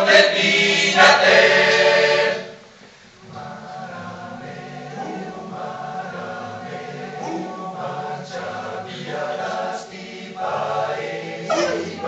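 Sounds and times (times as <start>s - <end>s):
male choir singing a cappella: 0.0s - 2.6s, 3.2s - 12.0s.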